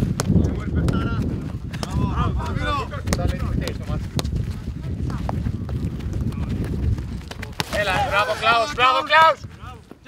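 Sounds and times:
football being kicked: 0.0s - 8.2s
players shouting: 7.6s - 9.8s.

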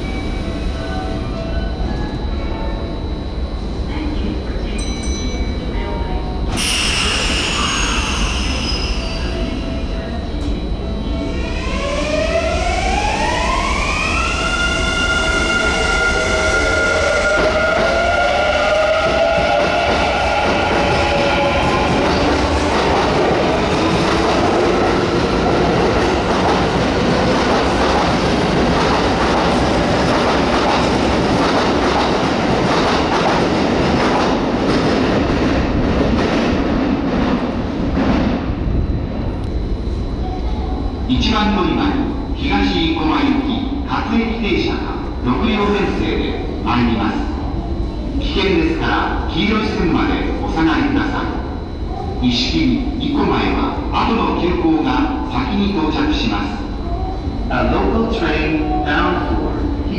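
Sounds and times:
train inverter whine: 0.0s - 59.9s
train motors and wheels running: 0.0s - 59.9s.

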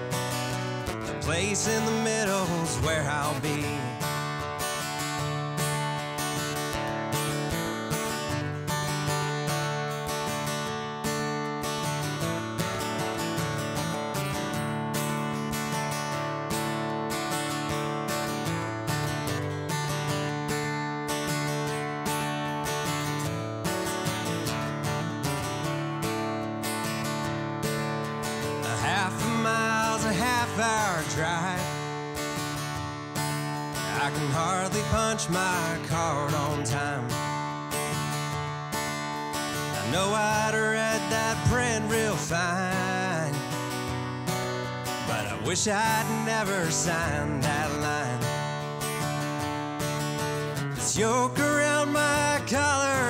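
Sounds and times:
acoustic guitar strumming: 0.0s - 53.0s
person singing: 1.1s - 4.3s, 28.5s - 31.9s, 33.8s - 37.4s, 39.8s - 43.6s, 45.1s - 48.6s, 50.8s - 53.0s.

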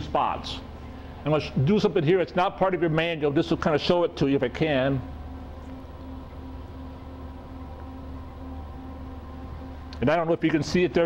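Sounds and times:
low machine hum: 0.0s - 11.0s
faint tone: 4.2s - 11.0s.

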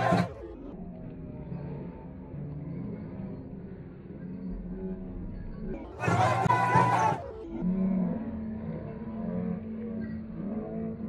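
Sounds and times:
muffled music: 0.0s - 11.0s.

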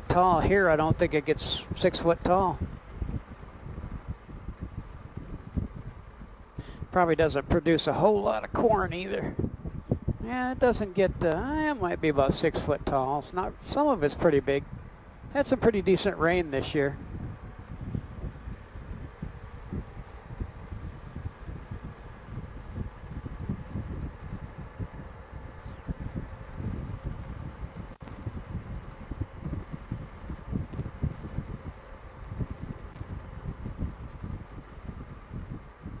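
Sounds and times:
motorcycle engine cruising: 0.0s - 36.0s
wind buffeting microphone: 0.0s - 36.0s.

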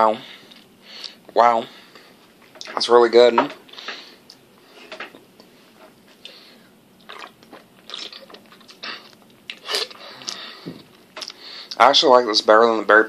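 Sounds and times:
lip smacks: 7.0s - 11.8s.

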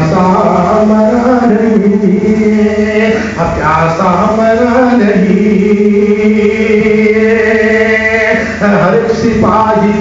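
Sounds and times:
man chanting devotional poetry: 0.0s - 10.0s.

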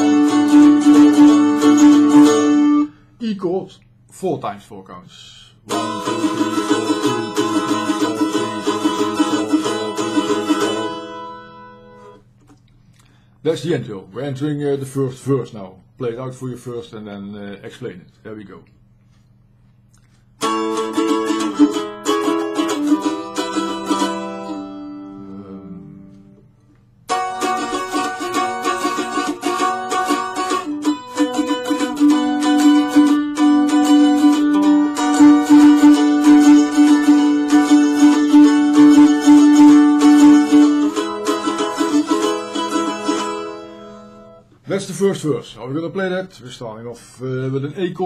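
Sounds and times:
solo mandolin melody: 0.0s - 3.0s, 5.7s - 12.4s, 20.4s - 26.4s, 27.1s - 44.6s.

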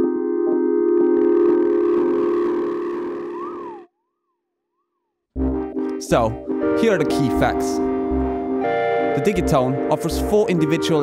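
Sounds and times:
synthesizer sustained chord: 0.0s - 3.9s, 5.4s - 11.0s
tone sweeping in pitch: 1.1s - 3.9s.

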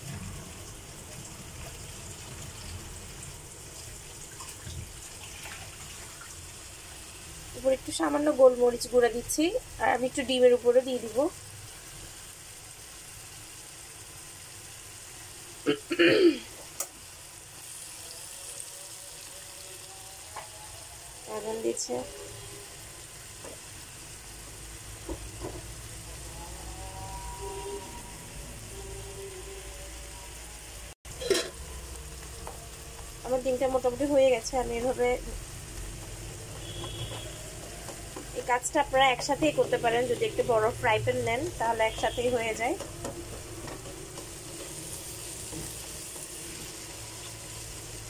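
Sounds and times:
egg and vegetables sizzling in pan: 0.0s - 48.0s.

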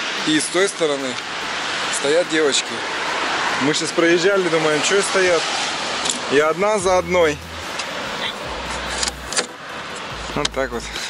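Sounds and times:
steady noise: 0.0s - 11.0s.

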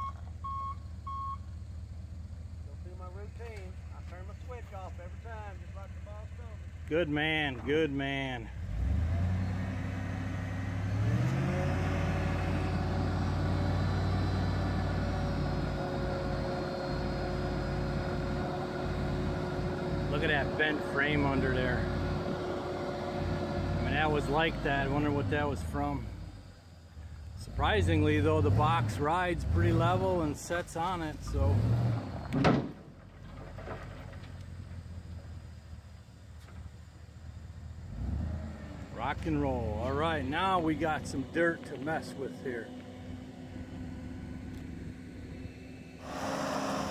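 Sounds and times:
truck engine running: 0.0s - 46.9s
dirt sliding out of truck bed: 31.2s - 34.9s
dump truck hydraulic hoist running: 46.0s - 46.9s.

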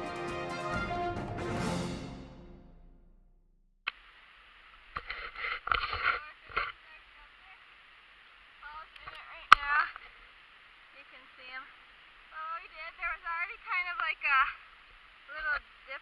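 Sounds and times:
rustling noise: 4.0s - 7.0s.

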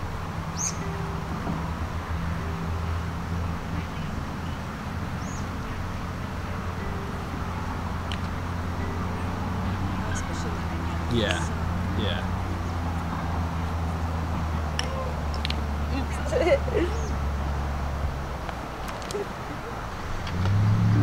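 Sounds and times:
low outdoor hum: 0.0s - 21.0s
bird chirps: 0.5s - 1.0s, 5.2s - 5.8s.

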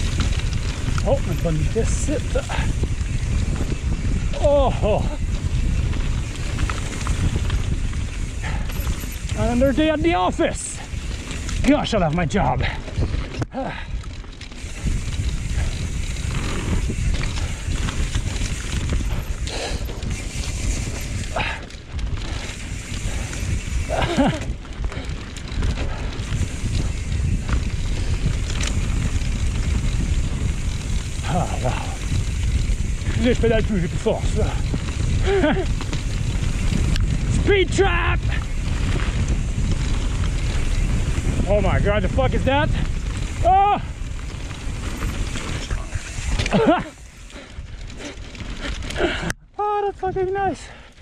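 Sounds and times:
bike knocks and rattles: 0.0s - 49.3s
tyres on dirt: 0.0s - 49.4s
wind rumbling on microphone: 0.0s - 50.9s
rider vocal exclamation: 4.3s - 5.3s, 31.2s - 32.1s, 43.3s - 44.0s.

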